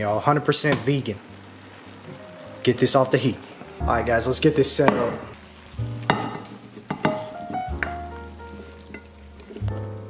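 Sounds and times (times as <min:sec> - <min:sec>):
pan sizzling: 0:00.0 - 0:10.0
soft background music: 0:00.0 - 0:10.0
pan knocking on plate: 0:04.8 - 0:05.3, 0:06.0 - 0:08.0.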